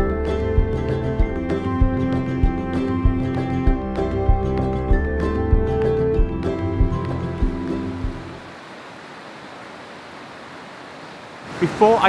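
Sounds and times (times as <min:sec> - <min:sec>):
background music: 0:00.0 - 0:08.5
river rushing over rocks: 0:08.0 - 0:12.0.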